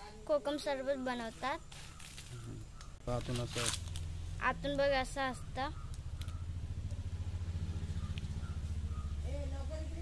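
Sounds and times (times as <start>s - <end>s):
small engine idling: 3.8s - 10.0s.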